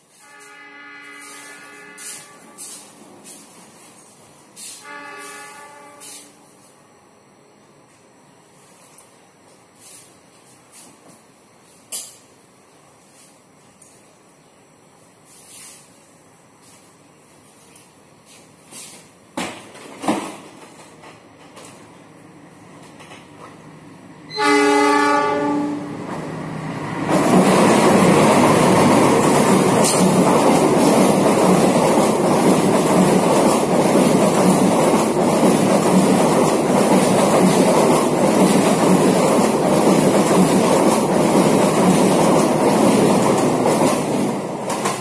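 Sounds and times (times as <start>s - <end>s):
train passing on rails: 0.0s - 45.0s
train horn: 0.1s - 3.0s, 4.6s - 6.5s, 24.3s - 26.0s.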